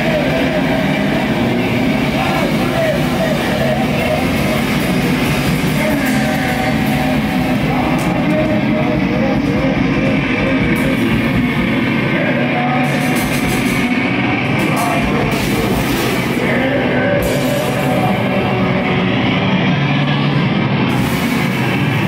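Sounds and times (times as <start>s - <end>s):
loud rock music: 0.0s - 22.0s.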